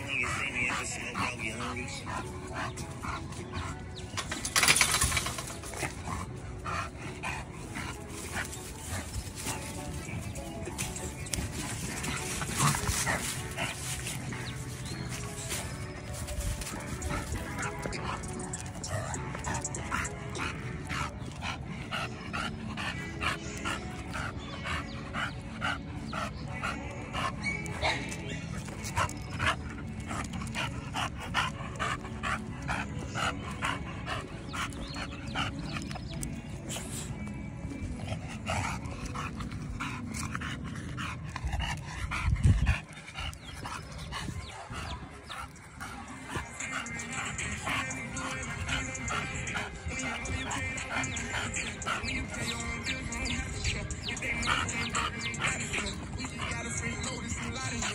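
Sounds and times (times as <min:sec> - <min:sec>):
dog panting: 0:00.0 - 0:57.9
music playing: 0:00.0 - 0:57.9.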